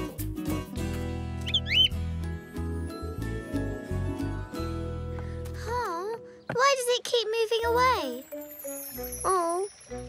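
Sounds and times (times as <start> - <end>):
gentle cartoon background music: 0.0 - 10.0
high chirp: 1.4 - 2.0.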